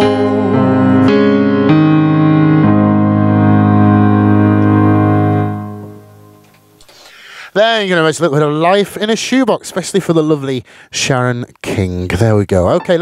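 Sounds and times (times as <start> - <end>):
keyboard piano chords: 0.0 - 6.8, 12.7 - 13.0.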